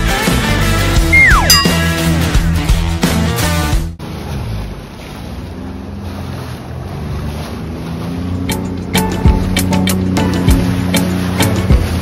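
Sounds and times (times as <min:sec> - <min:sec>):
jet ski engine humming: 0:00.0 - 0:12.0
choppy water splashing: 0:01.0 - 0:12.0.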